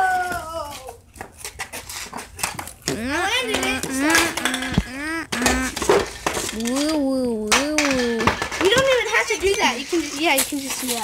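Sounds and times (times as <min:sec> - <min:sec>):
children talking and exclaiming: 0:02.9 - 0:05.3, 0:06.6 - 0:11.0.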